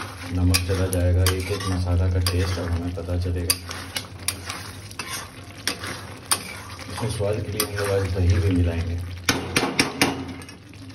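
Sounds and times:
metal spatula scraping a pan: 0:00.0 - 0:08.6
gravy sizzling: 0:00.0 - 0:10.9.

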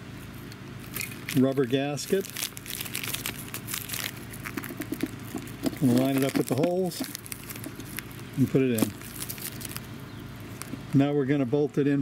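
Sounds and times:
plastic scratching and ticking: 0:00.9 - 0:09.9.

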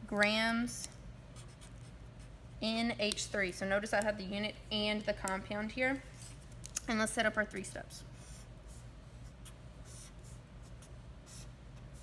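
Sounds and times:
felt-tip marker on paper: 0:08.2 - 0:12.0.

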